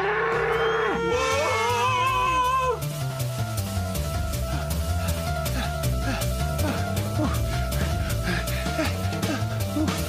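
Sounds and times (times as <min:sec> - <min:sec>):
background music with bass line: 0:00.6 - 0:10.0.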